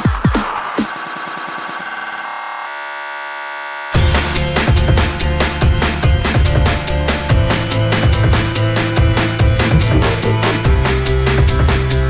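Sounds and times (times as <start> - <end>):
drum and bass beat: 5.6 - 12.0
sustained synthesizer tone: 9.6 - 10.8.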